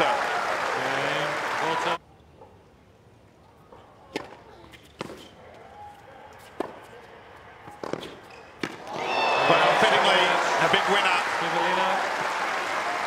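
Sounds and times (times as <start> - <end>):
tennis racket hitting ball: 7.6 - 9.0.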